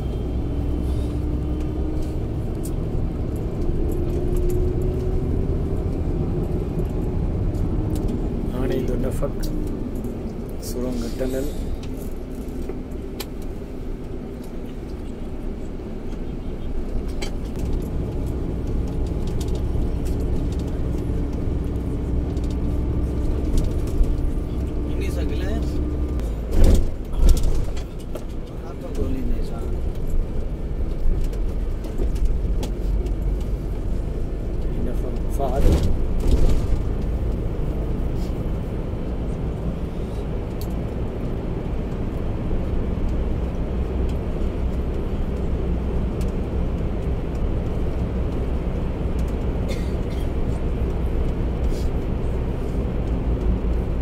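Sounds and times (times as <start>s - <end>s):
bus engine and tyre rumble: 0.0s - 54.0s.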